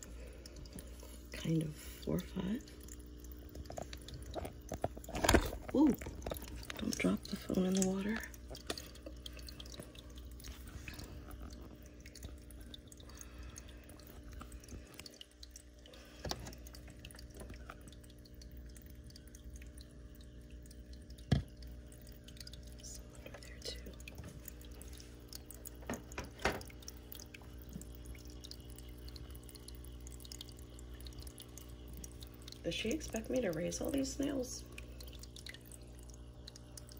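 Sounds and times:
steady low hum: 0:00.0 - 0:36.9
water trickling into aquarium: 0:00.0 - 0:36.9.

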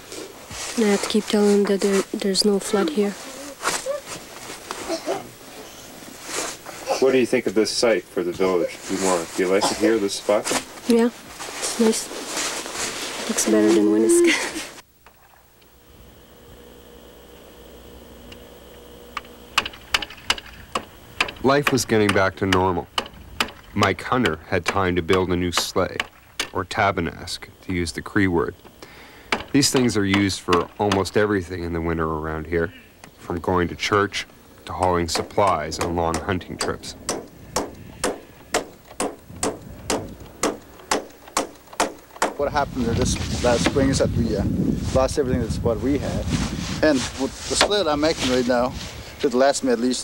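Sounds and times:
faint steady hum: 0:00.0 - 0:50.0
sharp knocks on wood: 0:19.6 - 0:26.5, 0:35.1 - 0:42.4
hammer driving nails into metal: 0:35.1 - 0:42.4.

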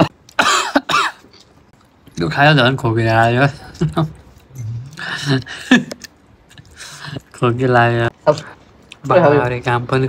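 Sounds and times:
person coughing: 0:00.0 - 0:01.3.

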